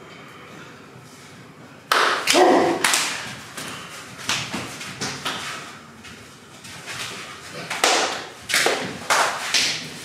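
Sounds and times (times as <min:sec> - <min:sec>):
slap of bodies colliding: 0:01.9 - 0:03.3, 0:04.2 - 0:05.5, 0:07.7 - 0:10.0
short shout: 0:02.3 - 0:03.0
slaps and thuds: 0:07.7 - 0:09.9.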